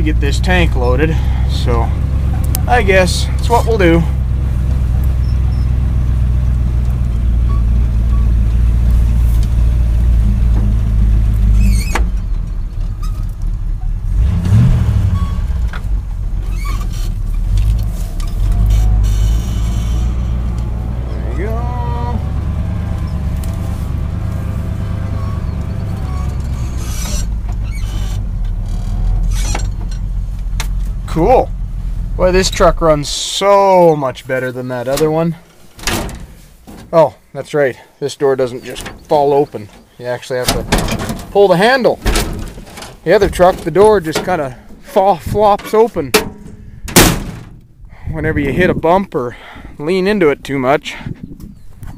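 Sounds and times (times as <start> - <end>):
truck engine droning: 0.0 - 50.5
rising squeal: 5.2 - 5.9, 10.2 - 14.0, 14.9 - 15.7, 16.4 - 30.1.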